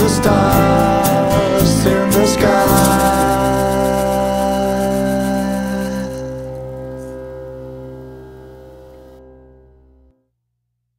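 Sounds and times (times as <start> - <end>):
band chord on guitars and keyboard: 0.0 - 10.1.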